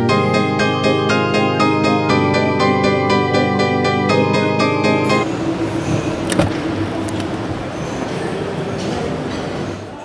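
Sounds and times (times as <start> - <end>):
hall background noise: 0.0 - 10.0
distant voices: 1.0 - 10.0
door latch clicks: 6.2 - 7.3.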